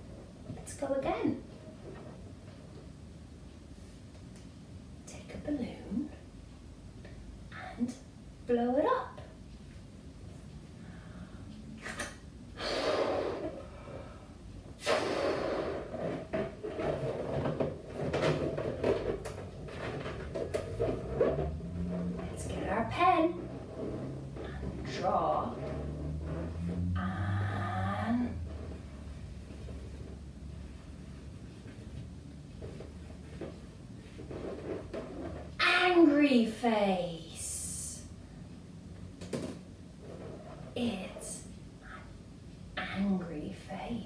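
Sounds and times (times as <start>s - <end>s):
breath puffs into balloon: 12.6s - 14.1s, 14.8s - 16.3s
squeaky balloon rubber: 14.8s - 22.4s, 23.3s - 27.2s.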